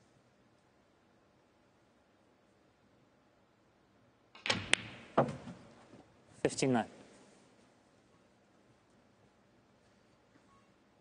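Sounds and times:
cue tip striking ball: 0:04.4 - 0:05.6
snooker balls clicking: 0:04.4 - 0:05.8.

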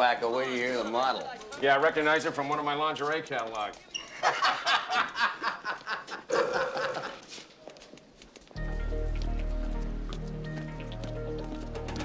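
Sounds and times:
men laughing: 0:04.0 - 0:07.4
film score music: 0:08.6 - 0:12.0.

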